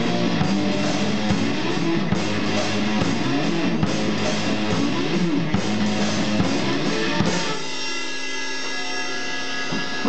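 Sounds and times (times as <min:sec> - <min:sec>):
sustained droning amplified chord: 0:06.8 - 0:10.0.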